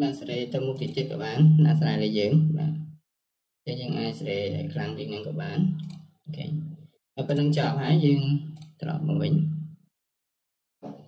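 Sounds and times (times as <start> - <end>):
man talking: 0.0 - 2.8, 3.7 - 9.6.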